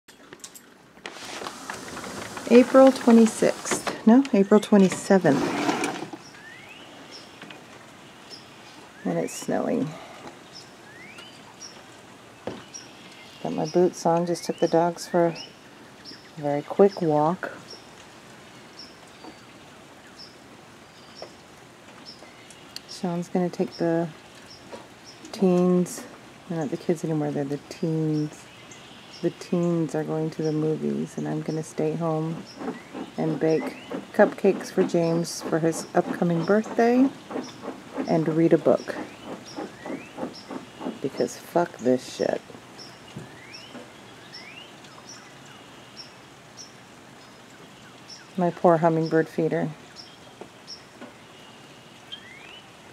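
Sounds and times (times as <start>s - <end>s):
rain and snow pattering: 0.8s - 5.0s, 17.1s - 28.8s
steady hiss: 1.0s - 5.2s
small birds chirping: 6.1s - 52.7s.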